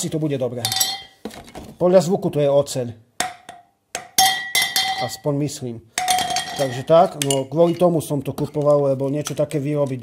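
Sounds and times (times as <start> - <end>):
metal tubes knocked ringing: 3.2 - 5.2.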